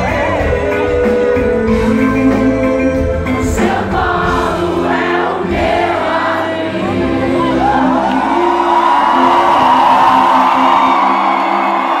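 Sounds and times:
crowd screaming and cheering: 0.0 - 12.0
live pop band with guitars: 0.0 - 12.0.

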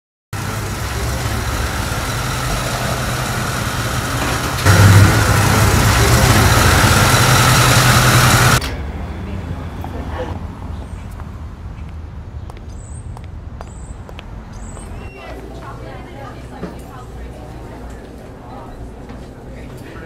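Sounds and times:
van engine running: 0.4 - 8.6.

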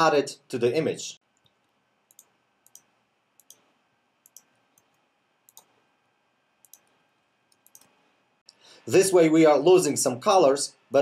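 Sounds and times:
computer mouse clicks: 1.4 - 5.7, 6.6 - 8.0.

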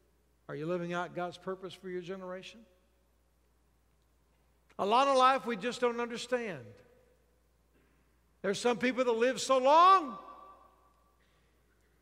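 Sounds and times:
man speaking: 0.5 - 2.8, 4.7 - 6.9, 8.4 - 10.6.

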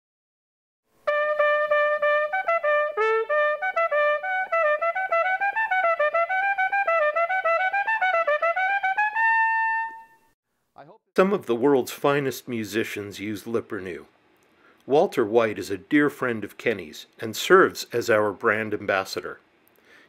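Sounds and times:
solo trumpet: 1.0 - 10.4.

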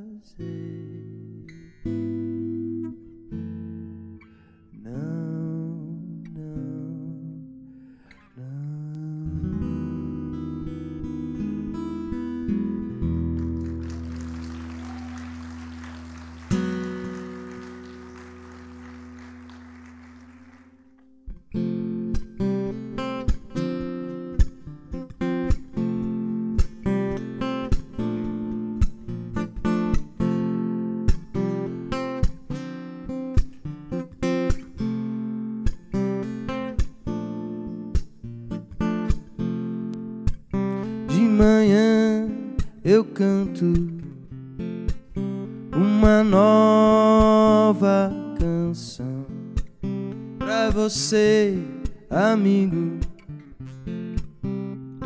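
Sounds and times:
acoustic guitar chords ringing: 0.4 - 55.0
rhythmic acoustic guitar strumming: 0.4 - 55.0.

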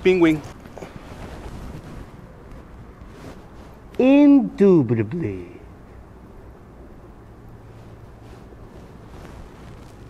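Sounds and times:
wind rumble on microphone: 0.0 - 4.0.

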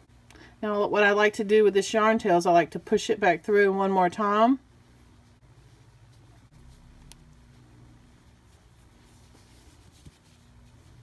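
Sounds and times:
low steady hum: 0.0 - 11.0
hands rubbing yarn: 5.1 - 11.0.

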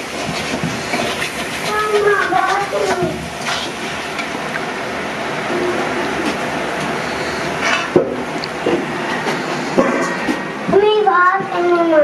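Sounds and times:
person speaking: 1.6 - 3.3.

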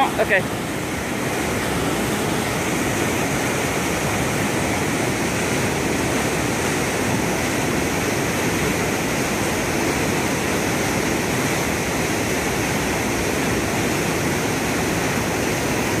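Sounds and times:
river water rushing over falls: 0.0 - 16.0.

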